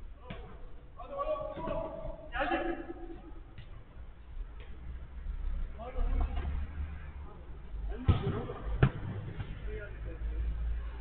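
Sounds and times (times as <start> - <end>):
football being kicked: 7.9 - 9.6.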